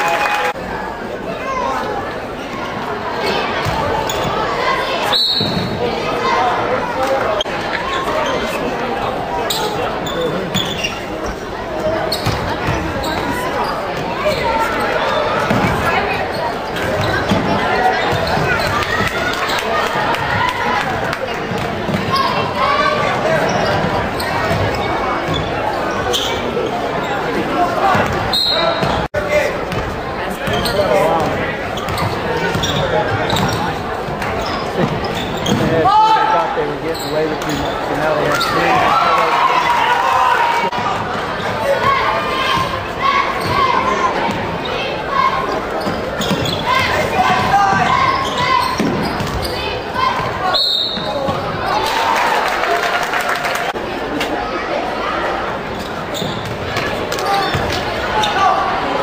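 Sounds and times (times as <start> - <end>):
spectators' voices and shouts: 0.0 - 59.0.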